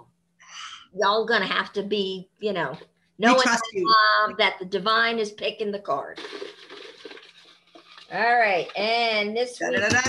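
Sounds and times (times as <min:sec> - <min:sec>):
paper cards rustling: 0:06.2 - 0:09.0.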